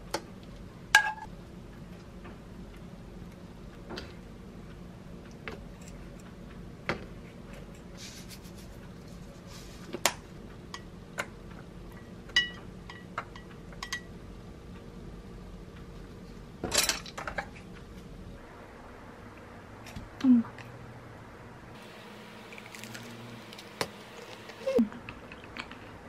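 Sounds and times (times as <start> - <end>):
low steady hum: 0.0 - 26.0.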